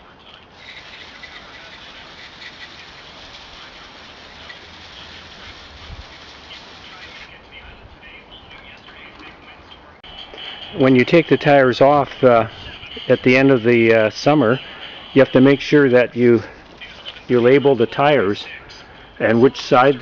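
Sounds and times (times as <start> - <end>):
hose nozzle spraying water: 0.6 - 6.9.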